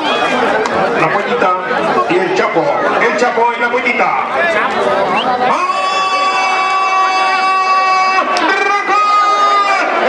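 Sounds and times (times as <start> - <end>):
crowd noise: 0.0 - 10.0
race announcer calling: 0.0 - 10.0.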